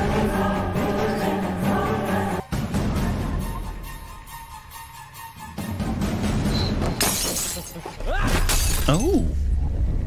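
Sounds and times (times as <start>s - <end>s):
glass shattering crash: 7.0s - 9.2s.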